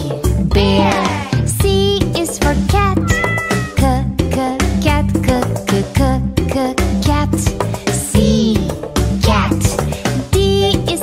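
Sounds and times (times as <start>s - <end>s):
upbeat children's song: 0.0s - 11.0s
cat meowing: 2.9s - 3.8s.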